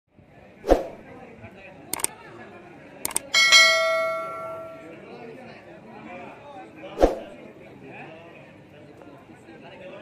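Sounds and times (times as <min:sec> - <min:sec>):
sharp mouse clicks: 0:01.9 - 0:02.1, 0:03.1 - 0:03.3
bright bell ding: 0:03.2 - 0:05.0.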